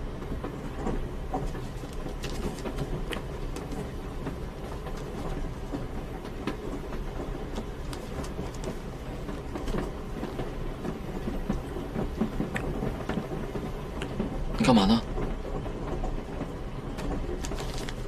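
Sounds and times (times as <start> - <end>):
train carriage rumbling: 0.0 - 18.0
wheels clicking over rails: 0.0 - 18.0.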